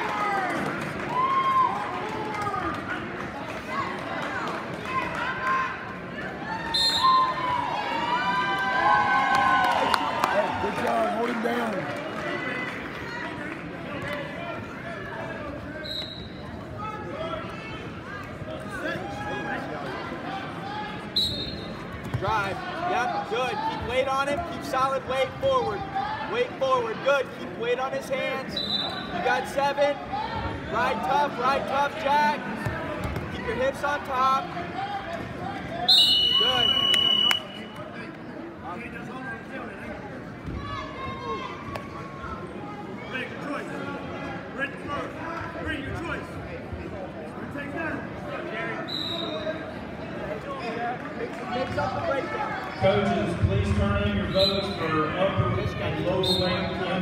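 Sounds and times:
crowd voices in a gym hall: 0:00.0 - 0:57.0
referee's whistle blasts: 0:06.7 - 0:07.3, 0:15.8 - 0:16.4, 0:21.2 - 0:21.8, 0:28.5 - 0:29.1, 0:35.9 - 0:37.8, 0:48.8 - 0:49.6, 0:54.2 - 0:54.9, 0:56.2 - 0:56.7.

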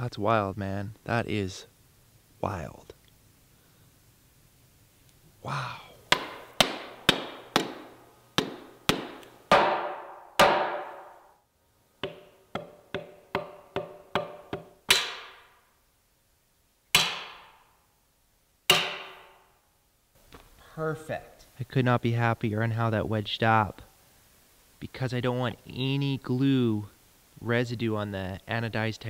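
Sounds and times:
hard knocks with metallic ring: 0:06.1 - 0:11.2, 0:12.0 - 0:15.4, 0:17.0 - 0:17.6, 0:18.7 - 0:19.4.

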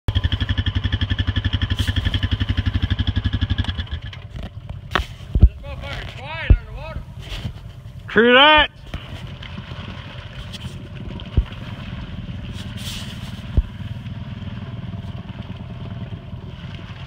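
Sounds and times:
off-road vehicle engine throbbing: 0:00.1 - 0:17.0
person calling out: 0:08.1 - 0:08.8.

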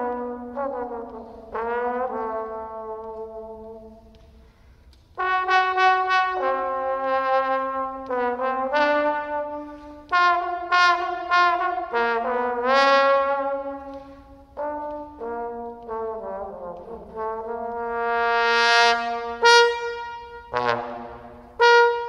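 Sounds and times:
trombone melody: 0:00.0 - 0:04.0, 0:05.2 - 0:22.0.

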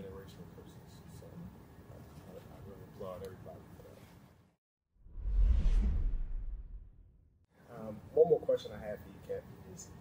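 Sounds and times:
deep low rumble: 0:05.0 - 0:07.4
whoosh: 0:05.0 - 0:07.4.

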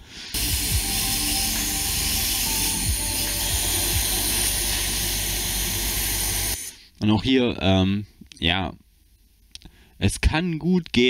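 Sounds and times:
pressure washer spraying water: 0:00.3 - 0:06.7.

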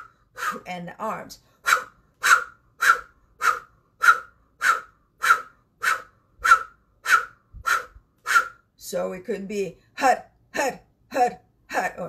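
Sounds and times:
sharp rhythmic breath exhales: 0:00.0 - 0:00.7, 0:01.4 - 0:08.7.

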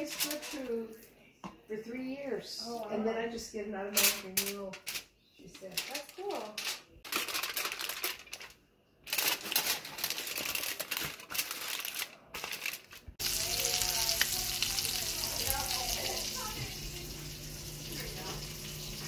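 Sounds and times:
aluminium foil crinkling: 0:04.4 - 0:19.0
tap water running into sink: 0:13.2 - 0:19.0.

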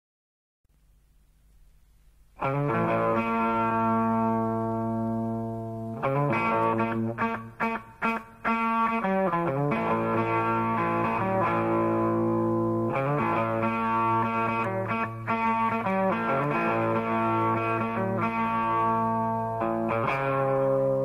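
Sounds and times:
distorted electric guitar: 0:02.4 - 0:21.0.

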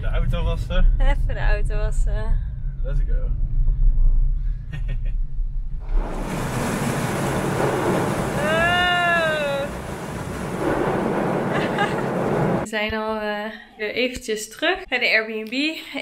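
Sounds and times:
low driving rumble: 0:00.0 - 0:12.7
water pouring onto car roof: 0:05.9 - 0:12.7.

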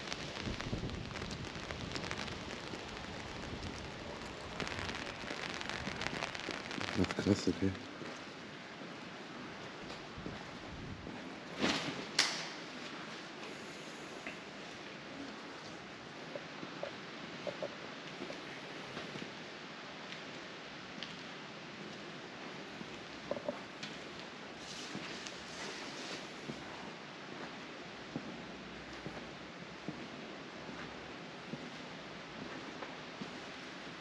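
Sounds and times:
room tone hiss: 0:00.0 - 0:34.0.

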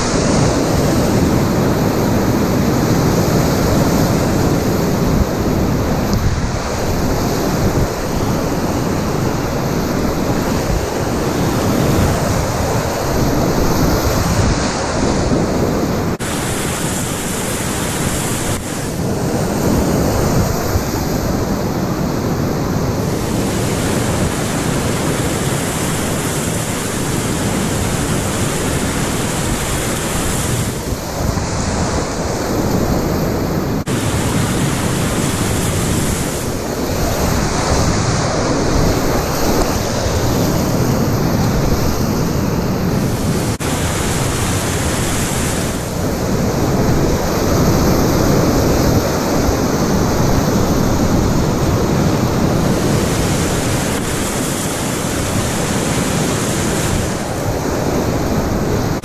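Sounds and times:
whitewater rapids rushing: 0:00.0 - 0:59.0
wind buffeting microphone: 0:00.0 - 0:59.0.

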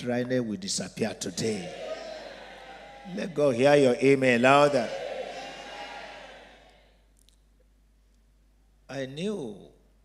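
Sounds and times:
amplified man's voice echoing: 0:00.0 - 0:01.9, 0:03.0 - 0:05.0.

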